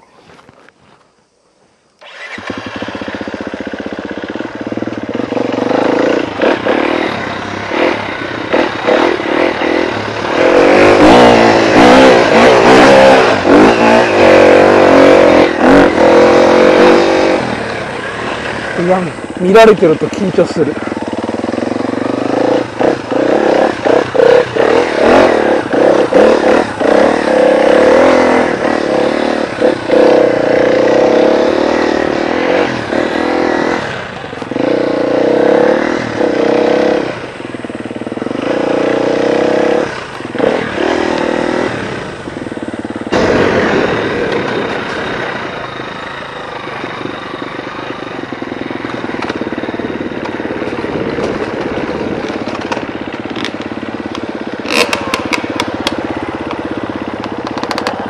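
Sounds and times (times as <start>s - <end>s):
motorcycle engine revving: 2.0s - 58.0s.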